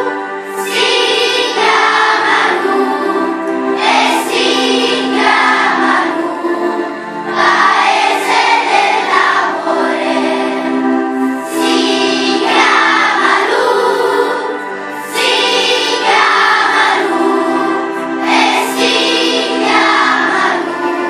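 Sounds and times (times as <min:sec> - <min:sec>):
children's choir singing: 0:00.0 - 0:21.0.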